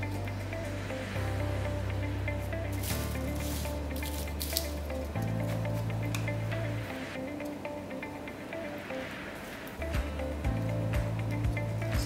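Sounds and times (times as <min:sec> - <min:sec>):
background music with bass notes: 0:00.0 - 0:12.0.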